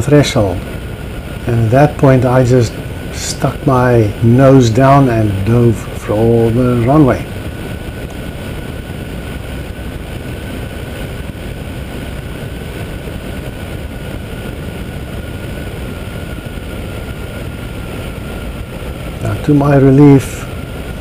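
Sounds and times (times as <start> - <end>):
aircraft engine idling: 0.0 - 21.0
thin steady whine: 0.0 - 21.0
wind rushing: 0.0 - 21.0.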